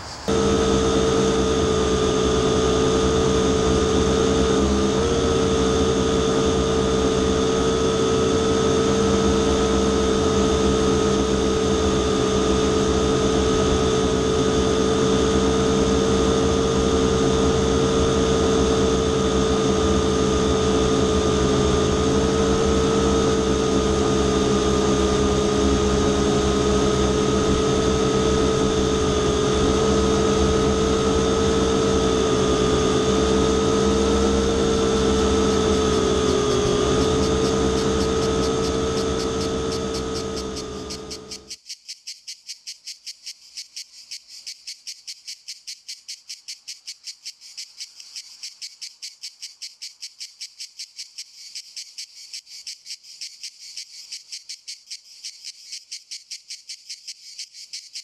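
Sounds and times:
droning hum with held tones: 0.0s - 41.6s
high-pitched chirping: 34.8s - 58.0s.

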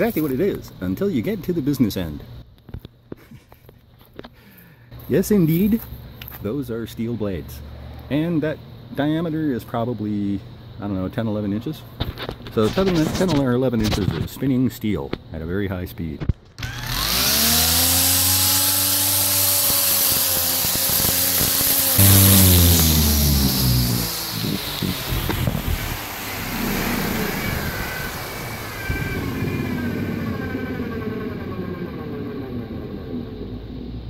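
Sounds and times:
blades whirring and rattling: 16.6s - 25.9s
weed trimmer motor whining: 16.6s - 25.9s.

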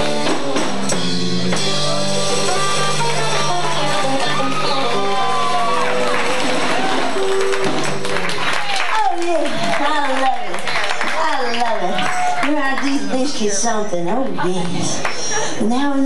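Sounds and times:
country-rock band playing: 0.0s - 13.9s
crowd cheering and clapping: 1.5s - 13.4s.

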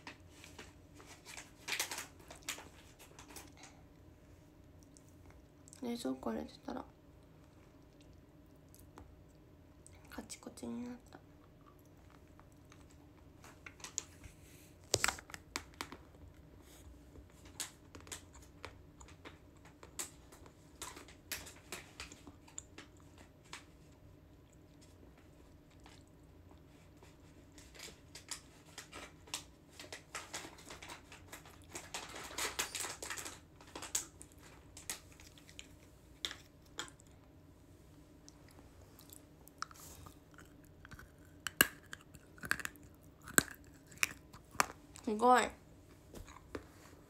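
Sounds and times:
person crunching something hard: 39.0s - 44.7s.

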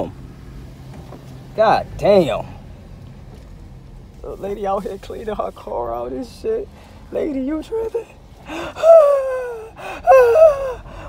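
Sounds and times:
man whining cries: 8.5s - 11.0s.

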